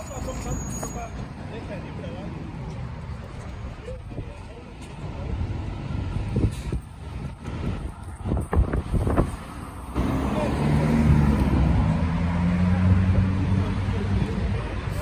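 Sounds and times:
wind gusts on microphone: 5.4 - 10.0.

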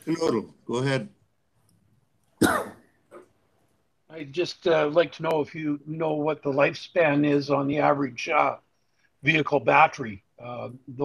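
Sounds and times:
person coughing: 2.4 - 2.8.

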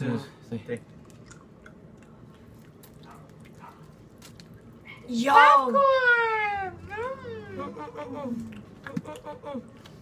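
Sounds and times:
people chewing: 0.8 - 5.0, 8.0 - 10.0.

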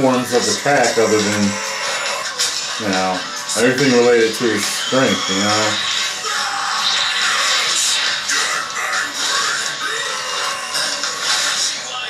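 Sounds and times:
strained vocal cry: 0.0 - 2.8, 4.5 - 12.0.

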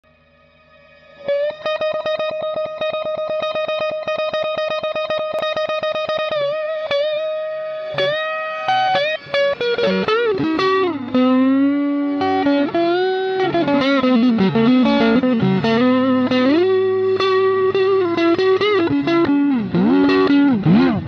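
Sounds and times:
overdriven electric guitar: 0.1 - 21.0.

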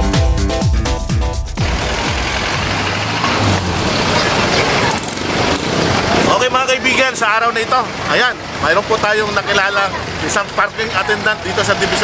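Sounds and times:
vehicle engine humming: 1.4 - 12.0
street traffic noise: 1.6 - 12.0.

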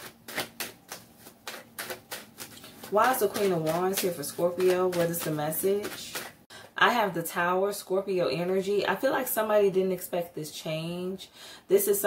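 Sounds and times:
cards being shuffled: 0.0 - 6.4.

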